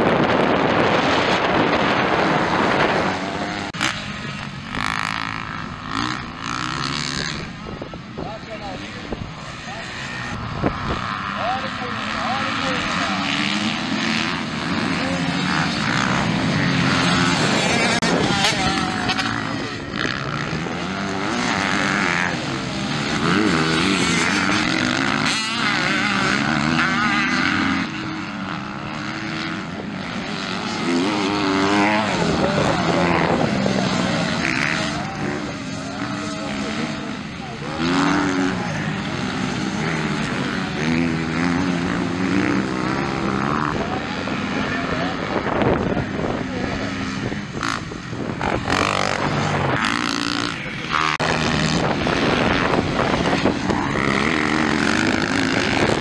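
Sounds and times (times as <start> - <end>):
dirt bike engines revving: 0.0 - 56.0.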